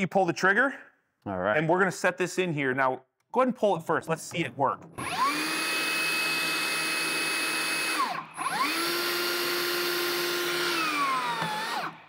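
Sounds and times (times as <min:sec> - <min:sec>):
motor and gearbox whining: 0:04.9 - 0:12.0.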